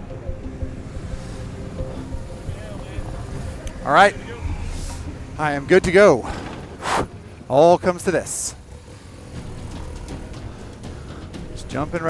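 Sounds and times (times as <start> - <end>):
motorcycle engine idling: 8.5 - 12.0.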